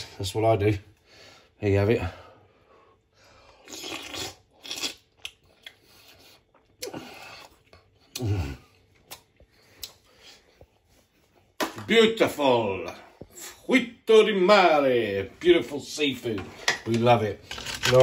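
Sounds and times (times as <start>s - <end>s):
person chewing: 3.6s - 10.6s.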